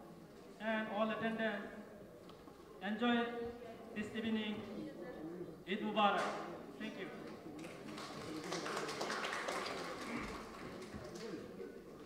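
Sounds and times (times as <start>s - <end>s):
murmur of voices: 0.0s - 12.0s
audience applauding: 7.6s - 11.5s.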